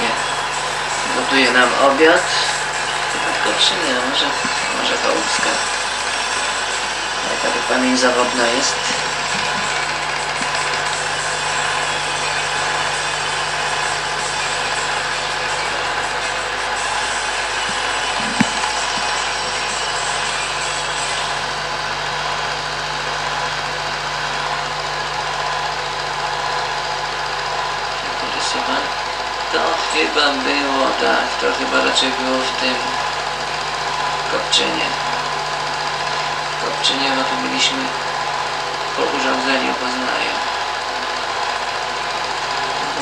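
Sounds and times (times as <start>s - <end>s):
film projector whirring: 0.0s - 43.0s.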